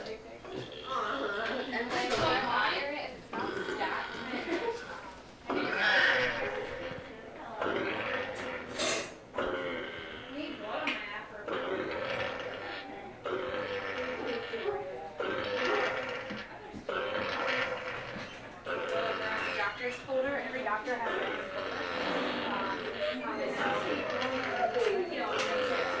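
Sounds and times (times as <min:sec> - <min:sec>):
pig grunting and squealing: 0:00.4 - 0:26.0.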